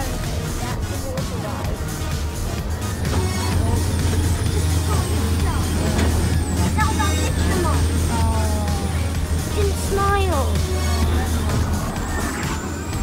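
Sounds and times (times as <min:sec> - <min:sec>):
music: 0:00.0 - 0:13.0
ride car humming: 0:00.0 - 0:13.0
voices: 0:00.0 - 0:13.0.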